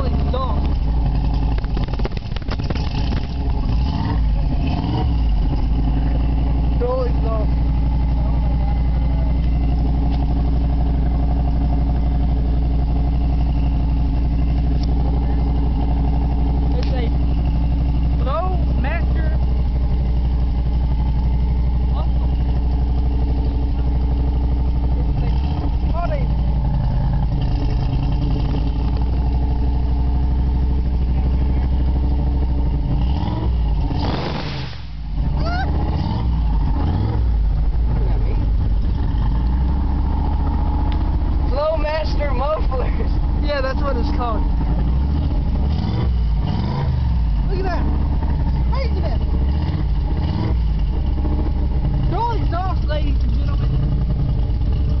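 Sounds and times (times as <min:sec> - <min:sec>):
car engine idling: 0:00.0 - 0:55.0.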